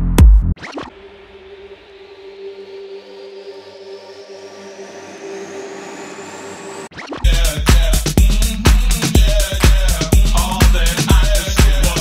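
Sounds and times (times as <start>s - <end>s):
kick drum beat: 0.0s - 0.6s, 7.3s - 12.0s
held synth drone: 0.8s - 6.9s
rising whoosh: 0.8s - 6.9s.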